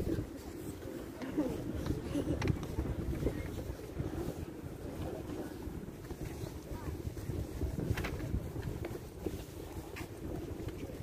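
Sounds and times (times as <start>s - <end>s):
faint voices: 0.0s - 11.0s
wind rumbling on microphone: 0.0s - 11.0s.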